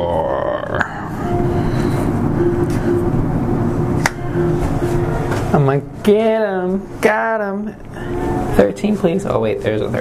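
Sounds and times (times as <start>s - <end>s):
faint wavering tone: 0.9s - 6.3s.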